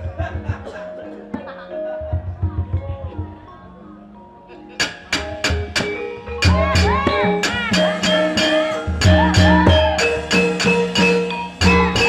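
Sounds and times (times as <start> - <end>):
sharp metal plate clacks: 4.8 - 6.1
faint ringing gamelan tones: 5.2 - 12.0.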